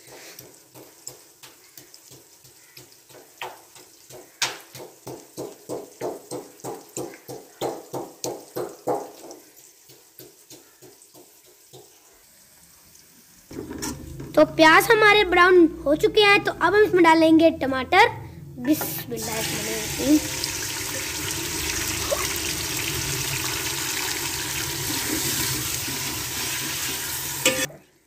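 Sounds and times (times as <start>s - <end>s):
pestle pounding in stone mortar: 0.7s - 11.8s.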